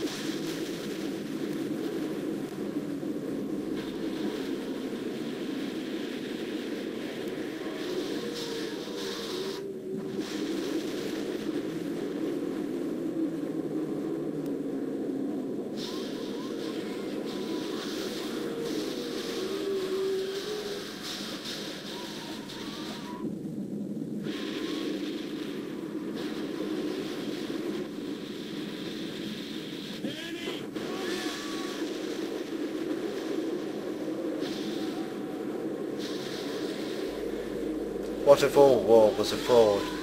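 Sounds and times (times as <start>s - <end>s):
rumbling roar with wavering tones: 16.4s - 23.3s.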